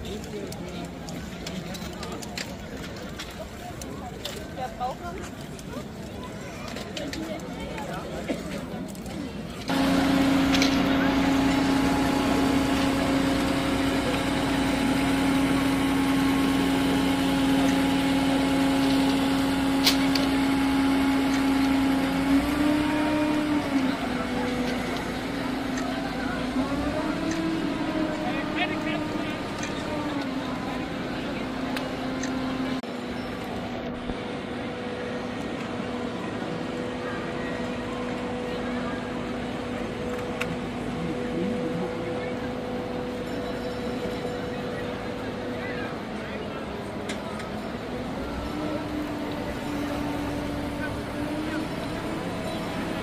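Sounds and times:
drone propellers whining: 9.7s - 32.8s.

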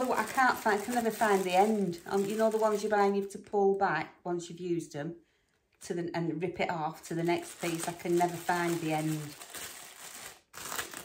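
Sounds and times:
plastic bag crinkling: 0.0s - 3.3s, 7.0s - 11.0s.

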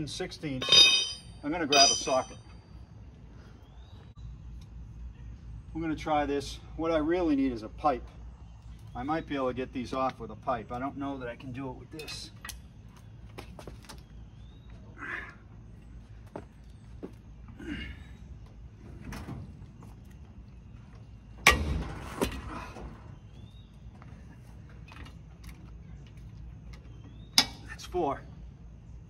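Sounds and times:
sharp metallic clank: 0.6s - 2.5s.

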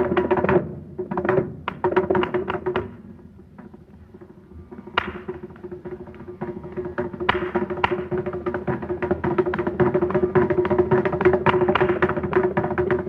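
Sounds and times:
hand drum strokes: 0.0s - 13.0s.

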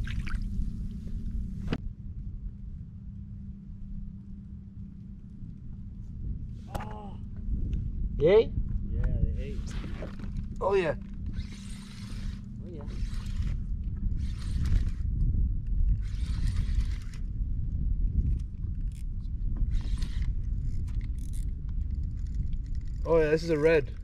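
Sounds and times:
wind rumble on microphone: 0.0s - 24.0s
fishing reel whirring: 11.2s - 13.6s, 14.2s - 15.0s, 16.0s - 17.2s.

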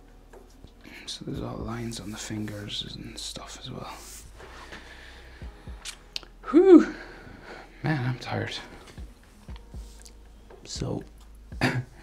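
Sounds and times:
steady low hum: 0.0s - 12.0s
intake of breath: 4.0s - 5.8s.

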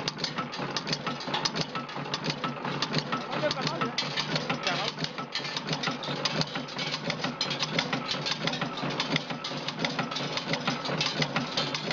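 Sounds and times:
rapid metal clatter: 0.0s - 11.9s.

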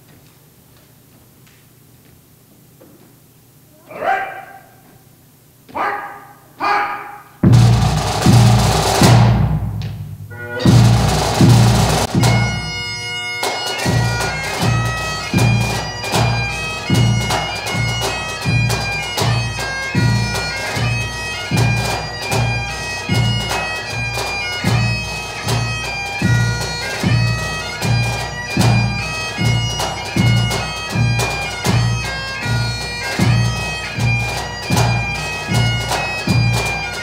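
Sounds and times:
snare and bass drums: 7.4s - 12.7s
bagpipes playing: 10.3s - 37.0s.

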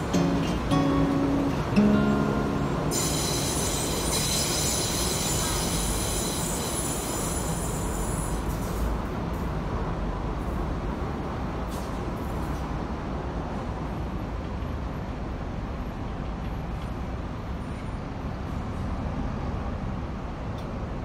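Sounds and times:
low train rumble: 0.0s - 21.0s
train wheels squealing: 2.9s - 8.9s.

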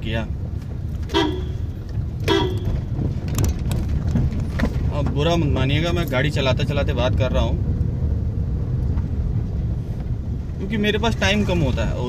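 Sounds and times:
engine and road rumble: 0.0s - 12.0s
car horn toots: 1.0s - 3.0s.

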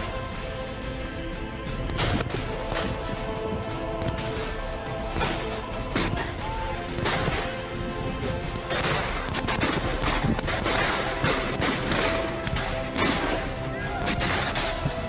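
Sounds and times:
background music: 0.0s - 15.0s
blank rifle shots: 8.6s - 15.0s.

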